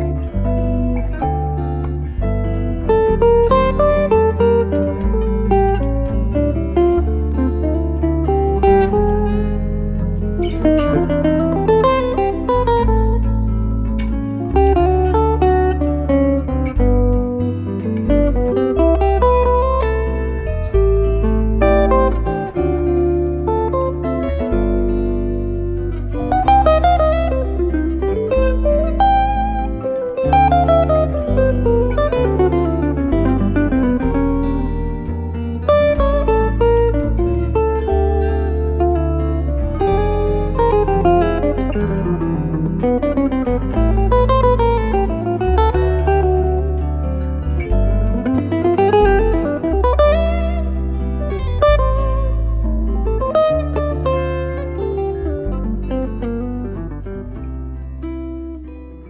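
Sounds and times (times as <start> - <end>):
electric guitar duo: 0.0 - 59.0.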